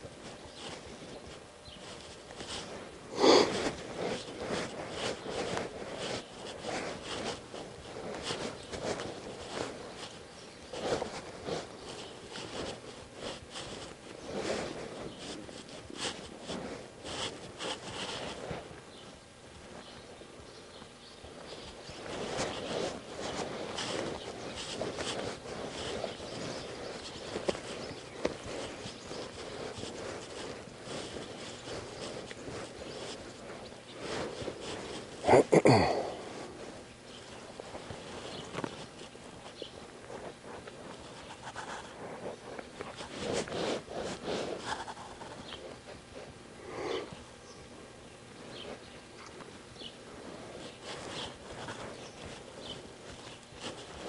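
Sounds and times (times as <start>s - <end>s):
hoofbeats on soft sand: 0.0s - 35.2s, 36.0s - 54.0s.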